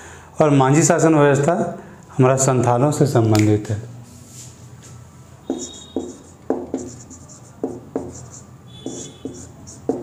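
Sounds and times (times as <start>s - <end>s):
marker writing on whiteboard: 5.4s - 10.0s
marker tip squeak: 5.5s - 7.1s, 8.1s - 10.0s.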